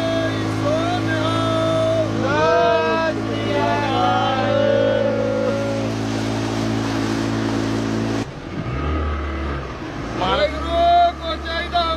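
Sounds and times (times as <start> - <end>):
voices: 0.0 - 6.3
deeper engine hum: 0.0 - 11.9
engine running: 0.0 - 11.9.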